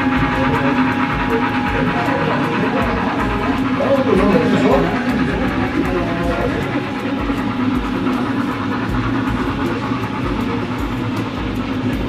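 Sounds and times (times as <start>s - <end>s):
background music: 0.0s - 12.0s
model train rolling hum: 0.0s - 12.0s.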